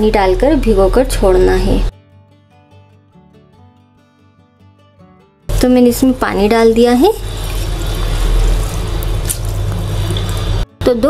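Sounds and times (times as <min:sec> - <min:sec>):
water swishing in a bowl: 0:06.3 - 0:10.6.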